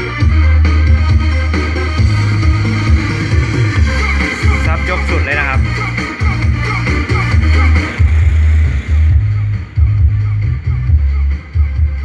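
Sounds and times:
loud bass-heavy music from car stereo: 0.0s - 12.0s.

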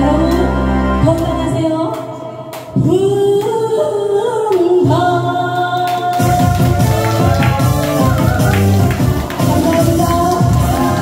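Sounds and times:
accompanying music: 0.0s - 3.8s, 4.8s - 11.0s
woman singing into microphone: 0.0s - 6.9s, 9.4s - 11.0s.

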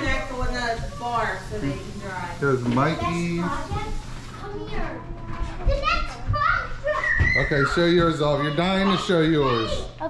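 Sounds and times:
children talking and calling out: 2.8s - 10.0s.

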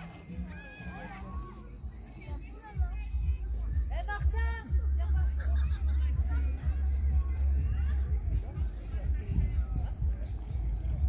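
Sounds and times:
children calling out: 0.0s - 1.8s.

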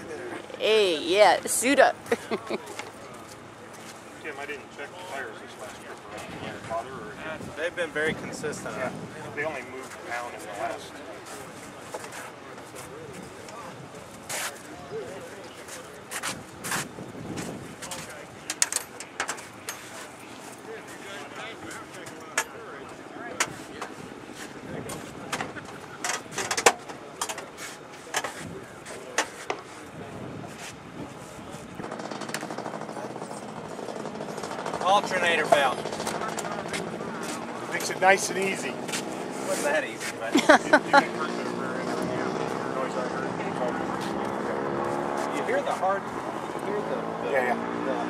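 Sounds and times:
faint voices: 0.0s - 48.0s
sharp clicks and knocks: 31.8s - 34.8s.

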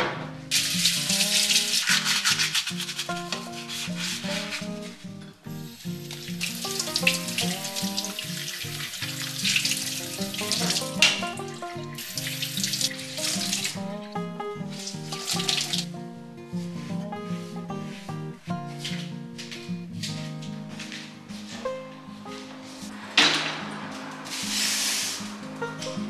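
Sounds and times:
soft background music: 0.0s - 26.0s
hands rubbing under water: 0.8s - 5.0s, 24.0s - 25.3s
tap running into steel sink: 6.0s - 13.8s.

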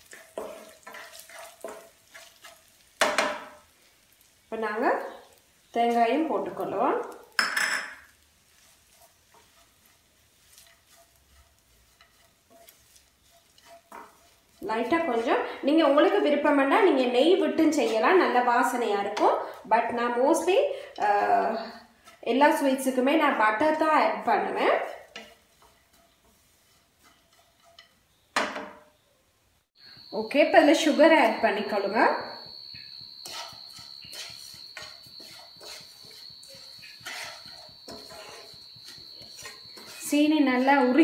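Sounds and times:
wooden spatula stirring in a pan: 0.0s - 28.9s, 29.8s - 41.0s.

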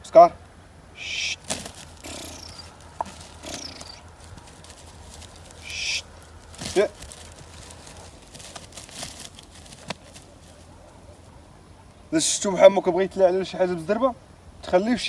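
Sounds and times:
loud voiced call: 1.0s - 2.8s, 5.6s - 6.1s
faint high falling chirps: 2.0s - 2.8s.

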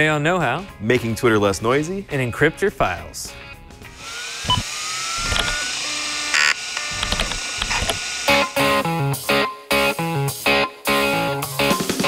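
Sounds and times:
drive motor whine: 4.0s - 8.8s
disk drive seek noise: 4.4s - 8.7s
disk drive clicks: 6.8s - 8.0s.

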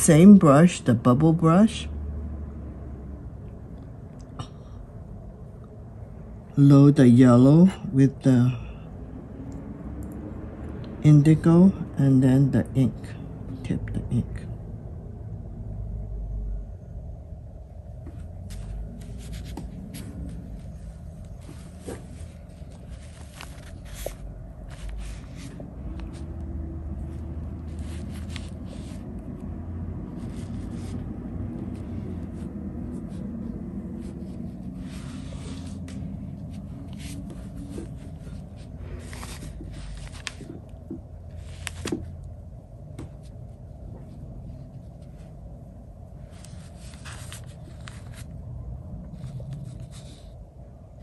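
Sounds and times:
brush scraping on paper: 30.1s - 40.6s.

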